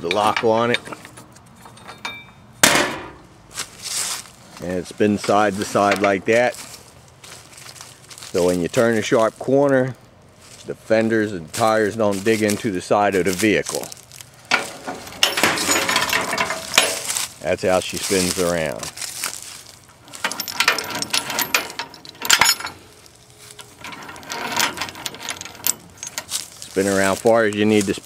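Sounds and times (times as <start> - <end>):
metal clinking and clanking: 0.0 - 3.3, 13.7 - 17.3, 19.9 - 27.7
small metal knocks: 0.0 - 3.3, 14.4 - 17.3, 20.1 - 26.7.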